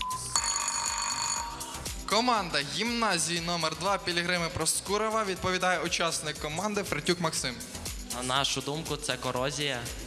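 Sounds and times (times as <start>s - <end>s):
electronic quiz buzzer: 0.0s - 1.7s
background music with steady beat: 0.0s - 10.0s.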